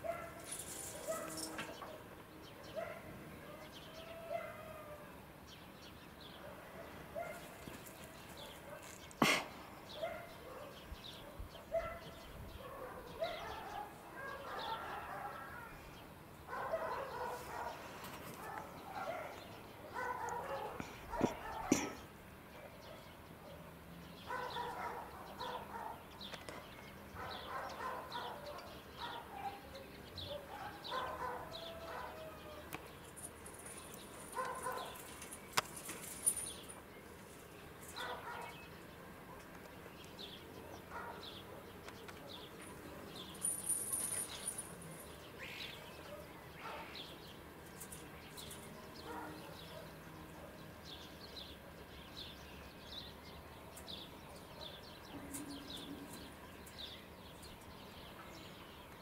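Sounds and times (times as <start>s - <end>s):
distant dog barking: 0.0s - 5.0s, 6.4s - 7.6s, 9.9s - 15.9s, 16.5s - 22.0s, 22.6s - 26.1s, 27.1s - 32.6s, 34.2s - 35.1s, 38.0s - 39.6s, 40.6s - 43.1s, 45.8s - 47.1s, 48.8s - 50.7s
small birds chirping: 0.0s - 59.0s.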